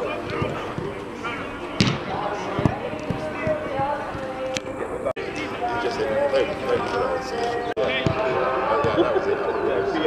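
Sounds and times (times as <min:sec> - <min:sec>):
background voices: 0:00.0 - 0:10.0.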